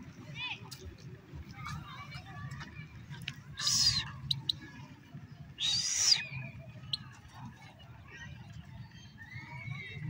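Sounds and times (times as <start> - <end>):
bird harsh calls: 3.6 - 4.6, 5.6 - 7.1.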